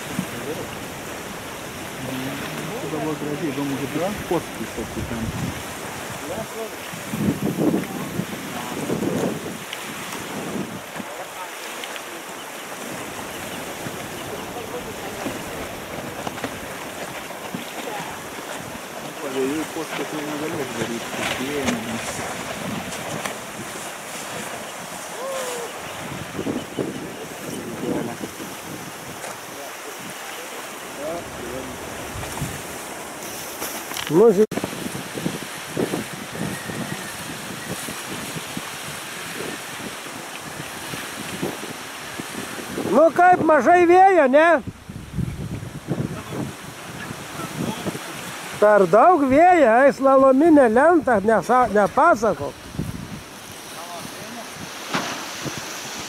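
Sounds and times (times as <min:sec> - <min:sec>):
wind buffeting microphone: 0:00.0 - 0:11.5, 0:12.1 - 0:56.0
choppy lake water: 0:00.0 - 0:56.0.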